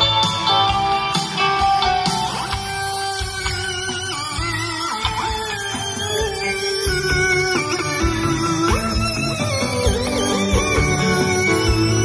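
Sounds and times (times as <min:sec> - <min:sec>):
electric guitar: 0:00.0 - 0:12.0
rock band playing: 0:00.0 - 0:12.0.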